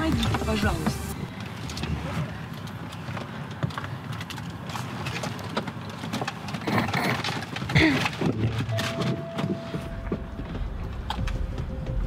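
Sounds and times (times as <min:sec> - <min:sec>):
car cabin rumble: 0:00.0 - 0:04.0, 0:07.4 - 0:12.0.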